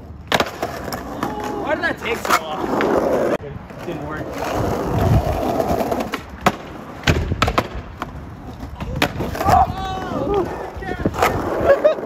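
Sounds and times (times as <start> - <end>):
skateboard wheels rolling on asphalt: 0.0 - 12.0
skateboard clacks: 0.2 - 12.0.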